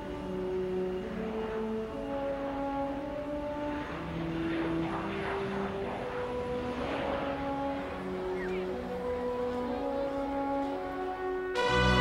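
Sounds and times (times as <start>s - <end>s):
background music slow held notes: 0.0s - 12.0s
jet engines taxiing: 0.0s - 12.0s.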